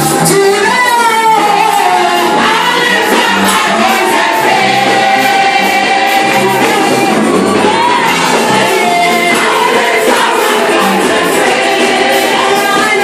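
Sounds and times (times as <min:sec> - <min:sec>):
bass line: 0:00.0 - 0:13.0
women singing gospel: 0:00.3 - 0:13.0.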